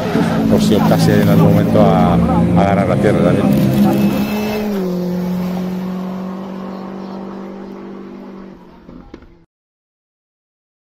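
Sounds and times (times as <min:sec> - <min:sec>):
rally car engine driving away: 0:00.0 - 0:09.5.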